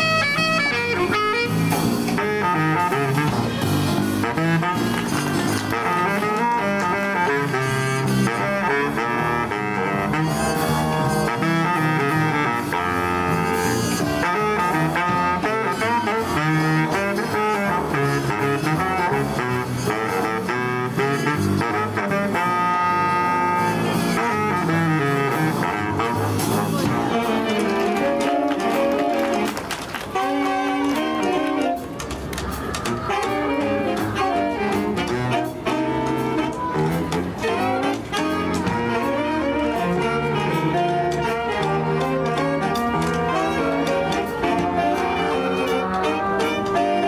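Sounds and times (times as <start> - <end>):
jazz big band playing: 0.0 - 47.0.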